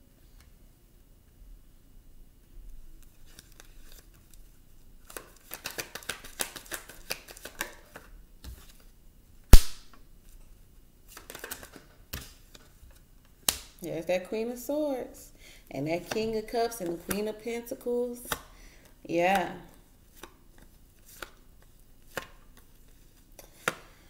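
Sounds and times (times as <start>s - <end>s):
cards flicking clicks: 9.5s - 9.9s
sharp card slap: 9.5s - 10.0s.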